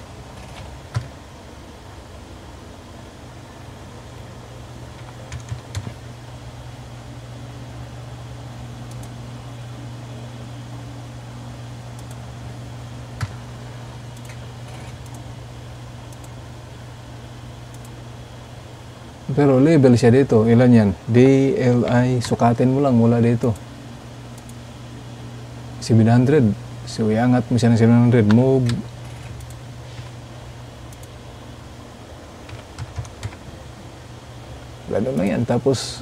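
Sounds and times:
steady low hum: 0.0 - 36.0
computer keyboard clicks: 0.4 - 1.1, 5.0 - 6.0, 14.1 - 15.2, 32.4 - 33.4
mouse clicks: 8.9 - 9.2.

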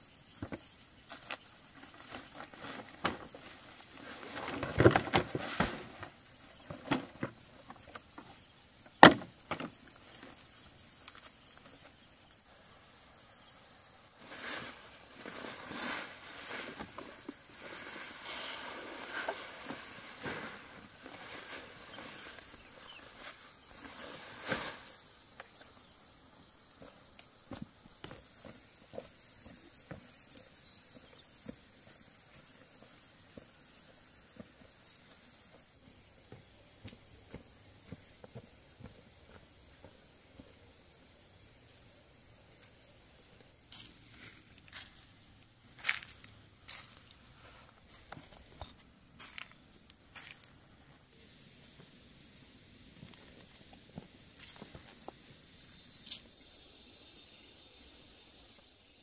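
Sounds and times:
insects buzzing: 0.0 - 59.0
footsteps crunching on dry leaves: 43.7 - 50.6.

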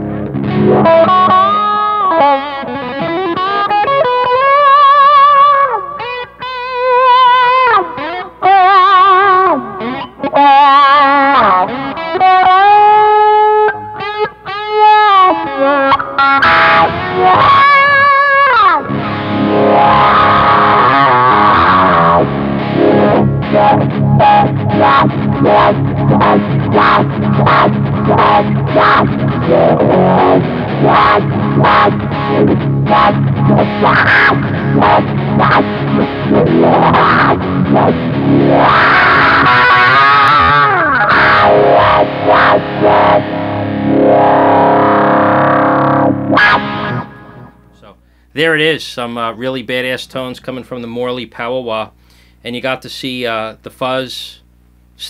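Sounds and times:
distorted electric guitar with wah: 0.0 - 48.3.

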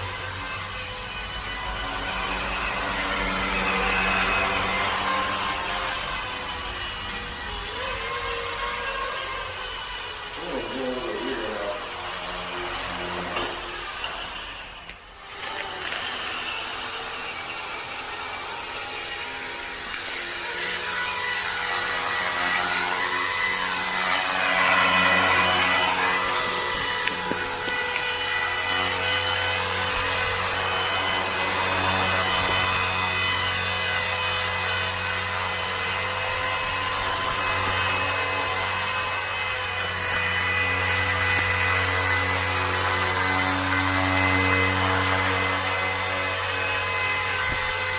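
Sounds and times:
rc helicopter rotor whine: 0.0 - 47.9.

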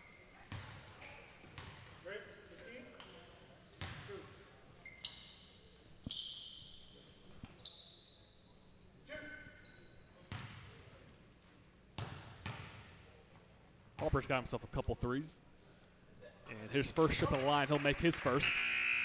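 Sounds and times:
basketball bouncing: 0.5 - 0.8, 10.3 - 10.6, 12.0 - 12.8
sneaker squeaks on hardwood floor: 4.8 - 8.5.

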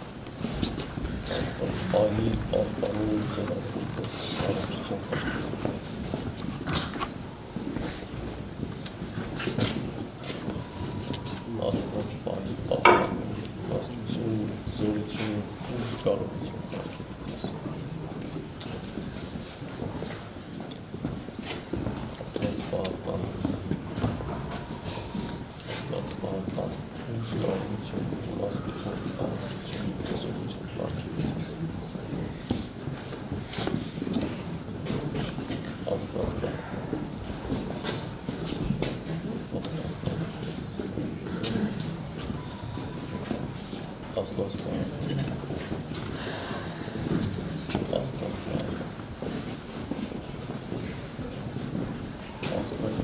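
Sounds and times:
murmured voices: 0.0 - 53.0
people shuffling and moving: 0.0 - 53.0.

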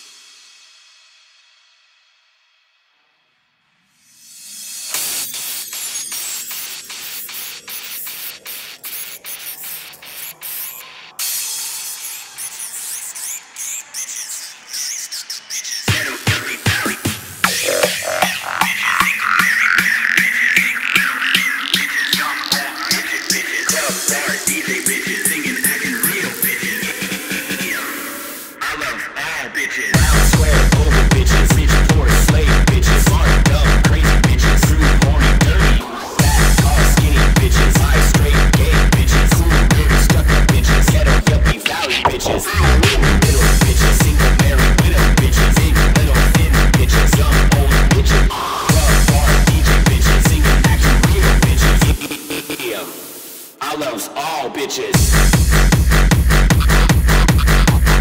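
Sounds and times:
hiss: 0.0 - 2.7, 3.9 - 16.6, 52.0 - 53.6
hardstyle dance music: 4.6 - 58.0
chirping synth sweeps: 4.9 - 16.3.

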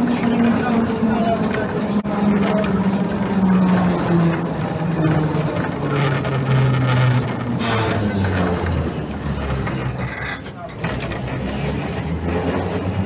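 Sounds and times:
tram motor whine: 0.0 - 13.0
wheels rumbling on track: 0.0 - 13.0.

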